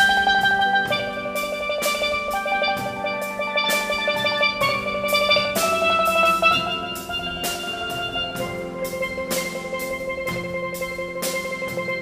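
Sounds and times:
light drum beat: 0.0 - 12.0
steelpan music: 0.0 - 12.0.

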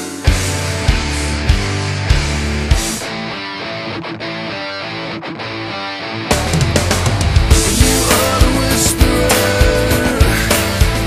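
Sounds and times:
rock song with guitars: 0.0 - 11.0.

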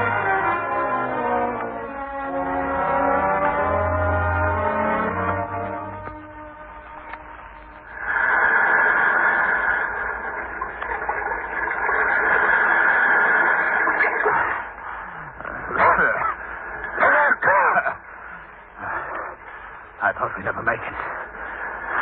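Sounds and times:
rushing surf: 8.0 - 14.3.

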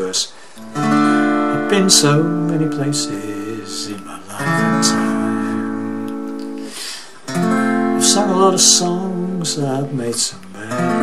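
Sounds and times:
acoustic guitar chord ringing: 0.6 - 11.0.

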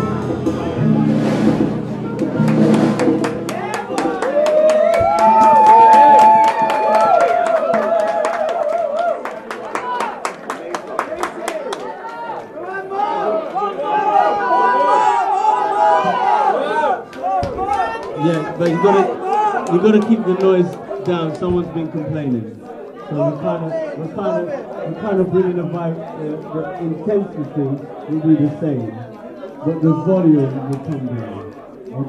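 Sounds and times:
crowd chatter in a pub: 0.0 - 4.2, 9.3 - 32.0
jazz band playing: 0.0 - 6.4
steady tapping clicks: 17.1 - 32.0.

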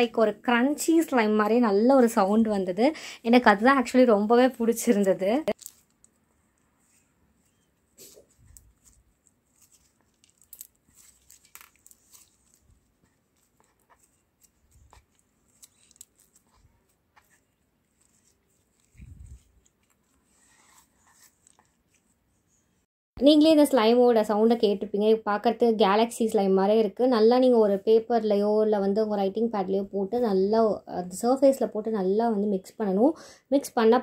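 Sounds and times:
slime crackling and squelching: 5.3 - 6.1, 7.5 - 22.0.

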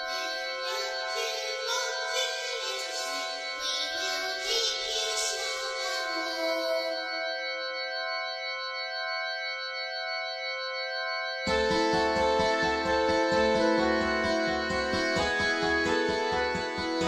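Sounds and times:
organ-like keyboard chord: 0.0 - 17.0.

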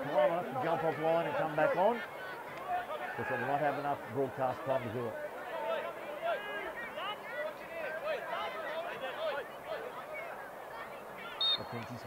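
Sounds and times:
players shouting: 0.0 - 11.7
referee's whistle blast: 11.4 - 11.8.

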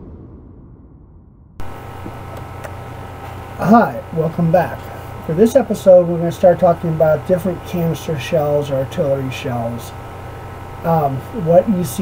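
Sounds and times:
low electrical hum with hiss: 1.6 - 12.0.

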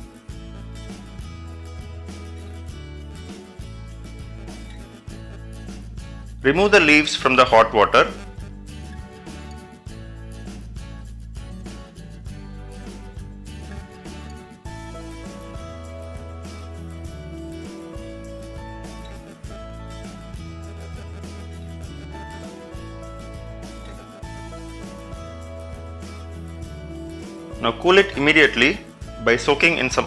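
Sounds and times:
guitar-led instrumental music: 0.0 - 30.0
held bass line: 0.0 - 30.0.

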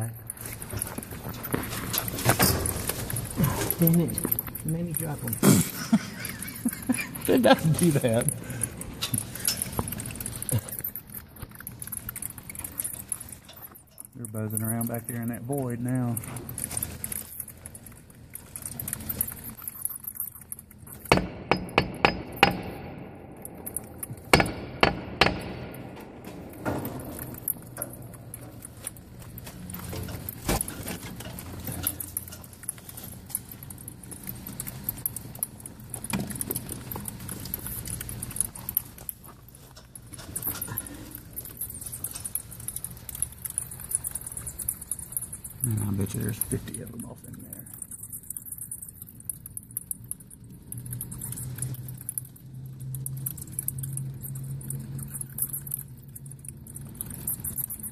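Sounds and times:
ceiling panel and cables rattling: 0.0 - 57.9.

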